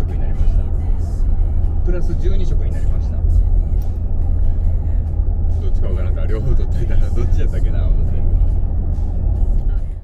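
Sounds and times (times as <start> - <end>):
car cabin road rumble: 0.0 - 10.0
diesel engine cruising: 0.0 - 10.0.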